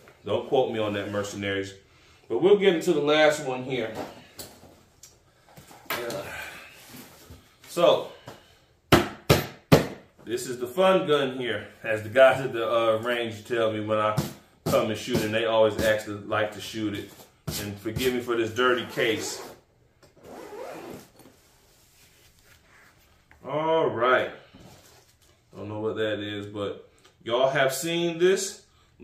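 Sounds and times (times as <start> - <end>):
zipper pulled open: 20.2 - 21.4
fabric rustling: 20.3 - 23.3.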